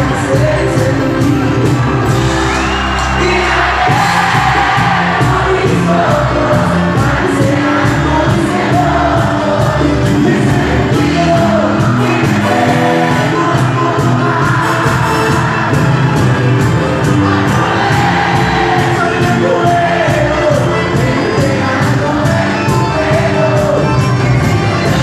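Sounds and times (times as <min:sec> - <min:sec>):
person singing: 0:00.0 - 0:02.0, 0:03.0 - 0:25.0
crowd in a large hall: 0:00.0 - 0:25.0
live band playing: 0:00.0 - 0:25.0.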